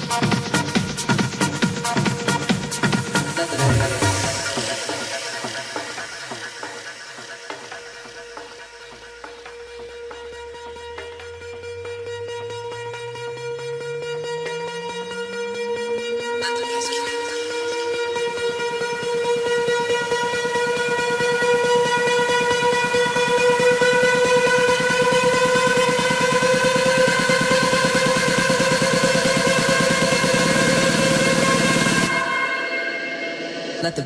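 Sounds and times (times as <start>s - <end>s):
rapid electronic pulsing: 0.0s - 34.0s
rising synth pitch sweep: 0.0s - 34.0s
held horn-like synth tone: 10.6s - 33.9s.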